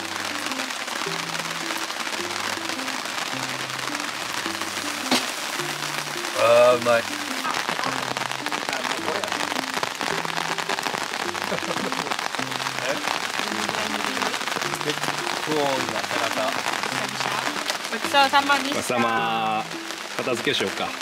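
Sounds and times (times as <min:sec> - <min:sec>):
heavy rain falling: 0:00.0 - 0:21.0
quiet background music: 0:00.0 - 0:21.0.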